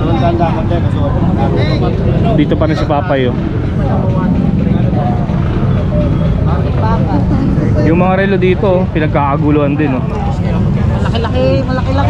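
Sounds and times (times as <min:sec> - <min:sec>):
people's voices chattering: 0:00.0 - 0:12.0
steady low rumble: 0:00.0 - 0:12.0.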